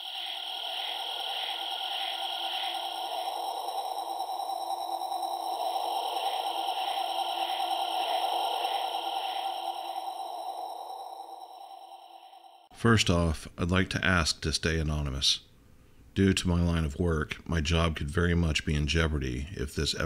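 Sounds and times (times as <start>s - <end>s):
hissing drone: 0.0s - 12.7s
soft pulsing: 0.0s - 12.7s.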